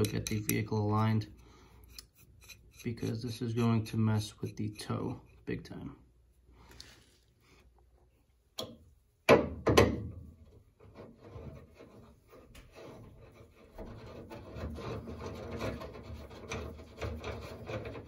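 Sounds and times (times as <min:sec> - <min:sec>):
metal threads scraping rasp: 0:00.0 - 0:05.5, 0:10.9 - 0:18.0.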